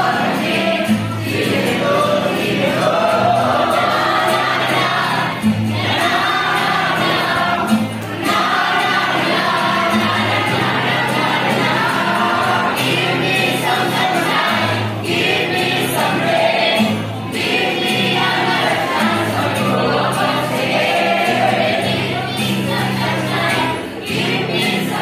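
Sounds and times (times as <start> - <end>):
strummed acoustic guitar: 0.0 - 25.0
women singing in unison: 0.0 - 25.0.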